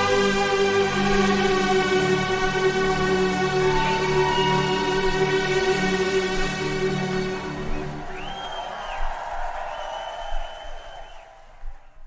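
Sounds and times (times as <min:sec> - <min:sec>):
high whistle-like synth tone: 0:02.8 - 0:11.4
crowd noise: 0:03.2 - 0:12.0.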